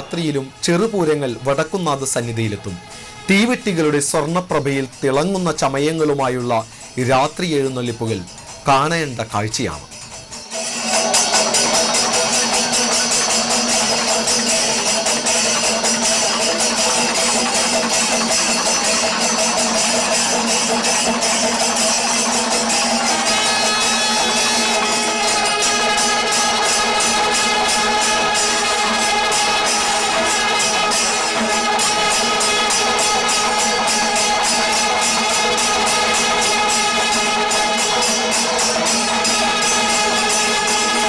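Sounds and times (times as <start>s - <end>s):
horns holding long notes: 0.0s - 4.3s, 10.6s - 41.0s
cymbals clashing fast: 0.0s - 41.0s.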